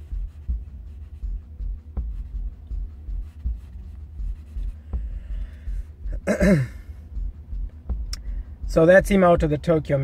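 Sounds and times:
pencil strokes on paper: 0.0s - 2.3s
low thumping rumble: 0.0s - 10.0s
man clearing throat: 6.2s - 6.9s.

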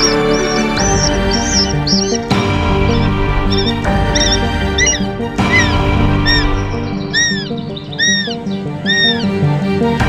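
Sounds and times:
hawk wailing calls: 0.0s - 9.4s
background music: 0.0s - 10.0s.

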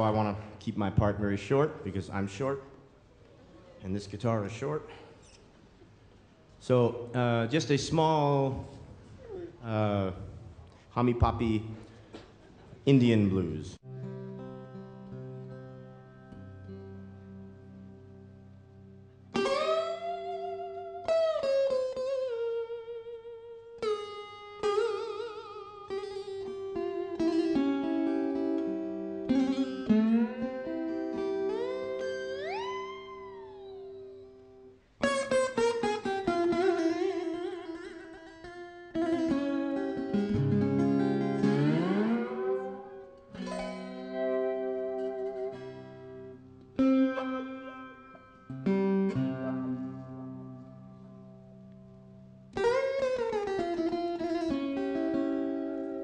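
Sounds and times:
lap slide guitar blues melody: 13.9s - 56.0s.

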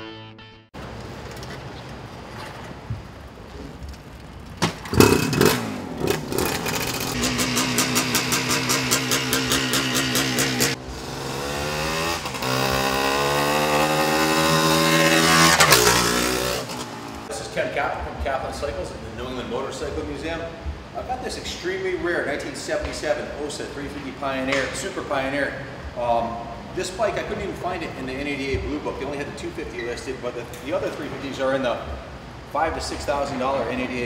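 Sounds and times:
two-stroke motorcycle engine revving: 4.8s - 17.3s.

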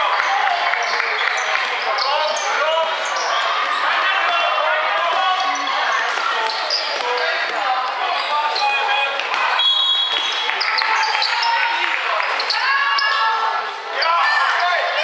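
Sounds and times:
overlapping voices in echoing hall: 0.0s - 15.0s.

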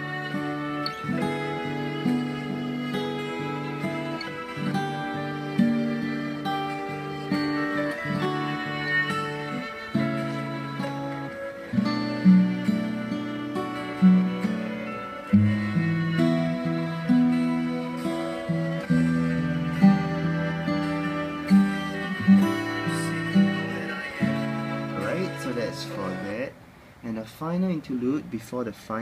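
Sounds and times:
fingerstyle acoustic guitar: 0.0s - 26.5s.

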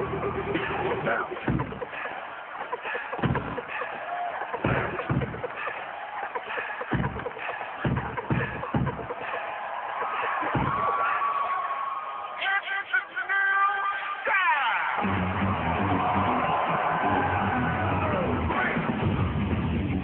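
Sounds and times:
crowd noise: 0.0s - 20.0s.

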